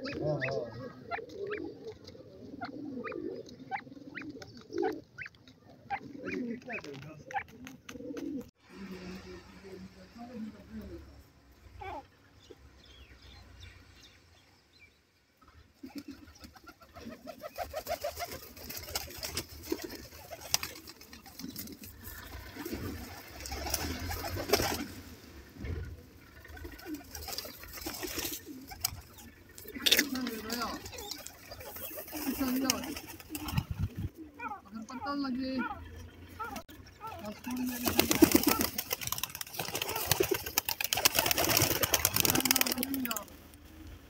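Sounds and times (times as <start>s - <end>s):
pigeons cooing: 0.0s - 8.6s, 15.8s - 44.0s.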